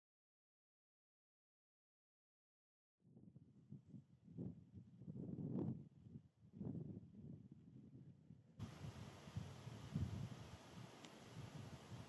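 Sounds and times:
wind buffeting microphone: 0:03.1 - 0:12.0
steady hiss: 0:08.6 - 0:12.0.

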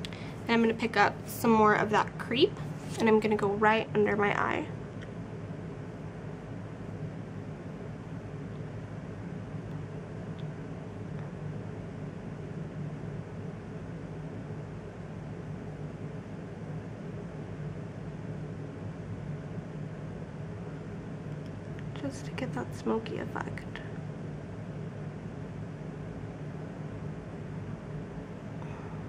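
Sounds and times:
low hum with faint hiss: 0:00.0 - 0:29.0.

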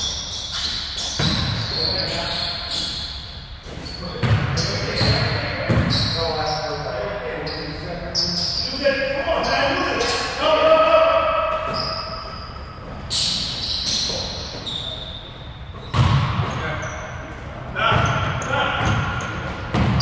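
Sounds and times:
sneakers squeaking: 0:00.0 - 0:20.0
basketball bouncing on hardwood floor: 0:01.2 - 0:01.6, 0:04.2 - 0:05.9, 0:15.9 - 0:16.3, 0:17.9 - 0:20.0
players calling out: 0:03.9 - 0:20.0.

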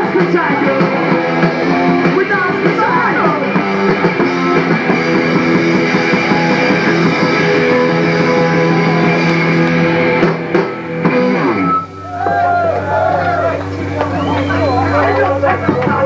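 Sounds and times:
distorted electric guitar chords: 0:00.0 - 0:16.0
drums: 0:00.0 - 0:16.0.

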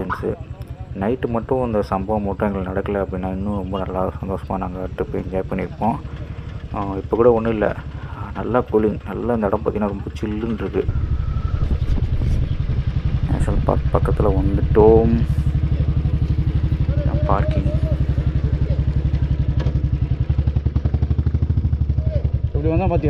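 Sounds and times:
motorcycle engine running: 0:00.0 - 0:23.0.

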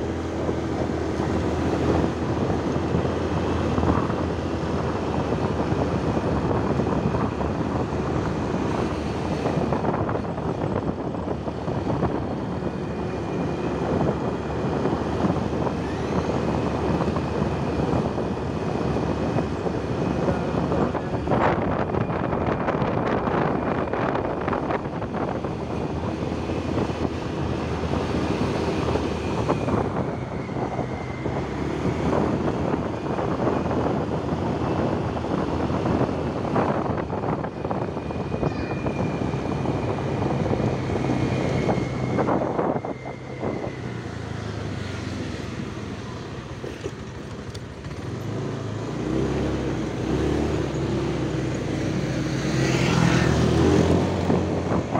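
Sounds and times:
wind noise on microphone: 0:00.0 - 0:54.9.

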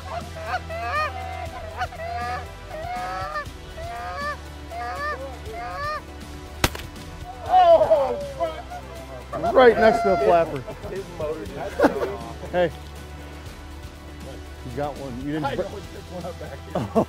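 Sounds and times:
goose honking and clucking: 0:00.0 - 0:06.1
sharp crack: 0:06.5 - 0:07.4.

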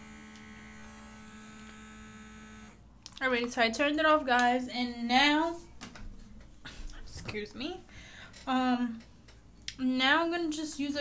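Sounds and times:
small electric motor humming: 0:00.0 - 0:02.8.

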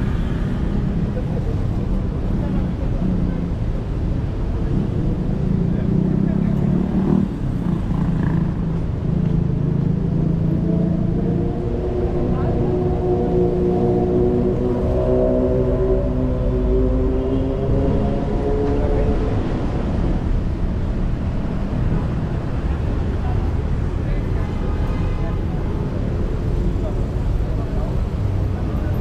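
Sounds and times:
car engines passing: 0:00.0 - 0:29.0
tyres rumbling on road: 0:00.0 - 0:29.0
engine drone with pitched tones: 0:08.2 - 0:20.4.

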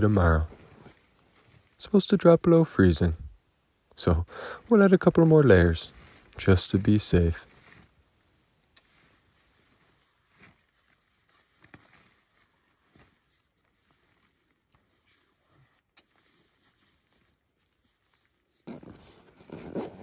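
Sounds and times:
fabric rustling: 0:00.0 - 0:01.8, 0:04.9 - 0:20.0.

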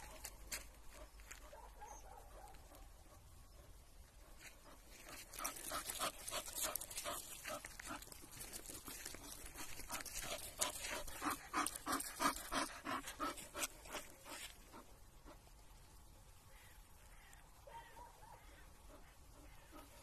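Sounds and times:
dog panting: 0:04.2 - 0:15.5, 0:18.9 - 0:20.0.

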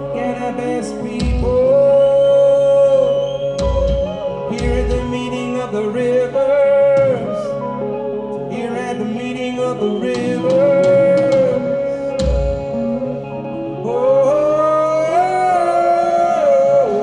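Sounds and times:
electric guitar: 0:00.0 - 0:17.0.

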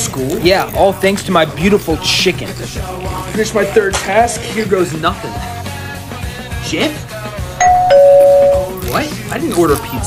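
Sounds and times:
background music: 0:00.0 - 0:10.0
two-tone doorbell chime: 0:07.6 - 0:08.8.

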